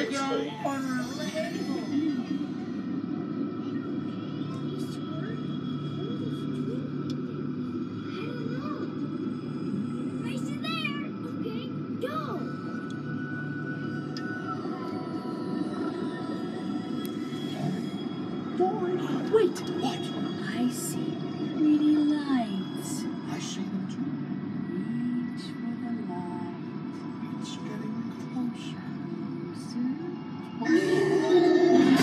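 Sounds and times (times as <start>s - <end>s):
steady low rumble: 0.0s - 32.0s.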